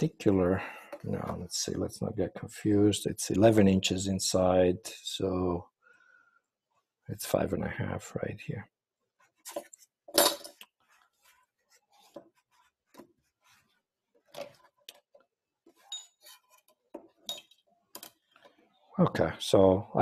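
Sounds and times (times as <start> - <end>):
faint metallic clinks: 15.8 - 16.4, 17.2 - 18.3.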